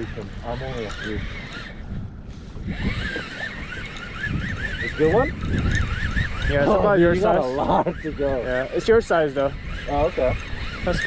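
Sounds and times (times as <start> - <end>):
fishing reel squealing: 0.0 - 2.0, 2.6 - 11.0
low wind rumble: 0.0 - 11.0.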